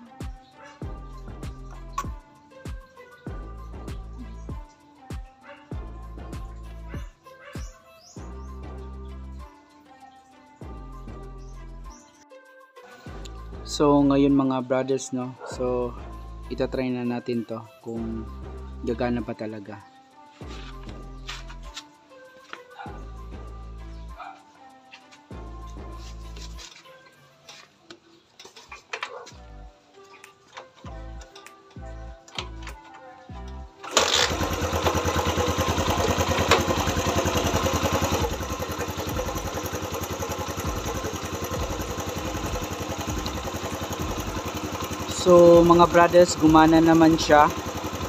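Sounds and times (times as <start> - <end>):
background music: 0.0 - 48.0
motorcycle engine starting and idling: 30.5 - 48.0.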